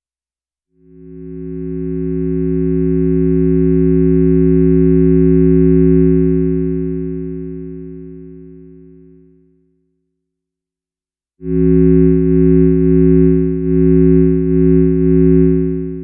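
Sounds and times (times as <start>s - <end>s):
sustained synth drone chord: 11.5s - 16.0s.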